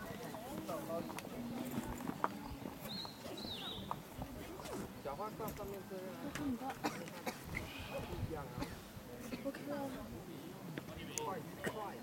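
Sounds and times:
faint background voices: 0.0 - 12.0.

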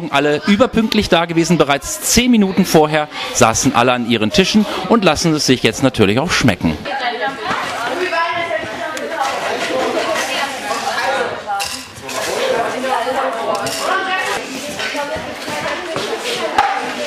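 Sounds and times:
young people chattering: 0.0 - 17.0
dishes and cutlery clinking: 9.1 - 17.0.

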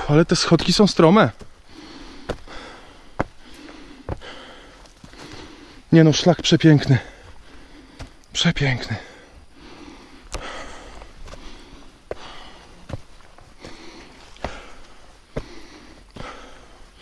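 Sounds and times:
footsteps on stone: 0.4 - 8.3, 10.2 - 17.0
man breathing hard: 1.5 - 5.9, 6.9 - 8.2, 8.9 - 17.0.

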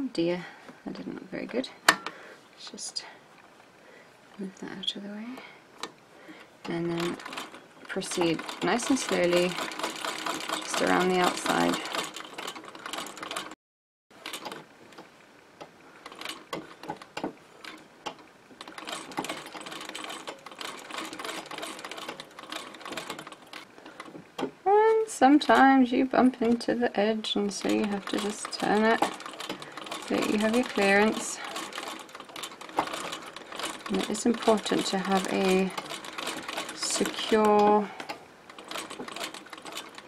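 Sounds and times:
treadle sewing machine ticking: 6.6 - 13.6, 16.0 - 24.1, 27.3 - 37.9, 38.5 - 40.0
needle mechanism clicking: 15.6 - 24.5, 27.3 - 40.0.

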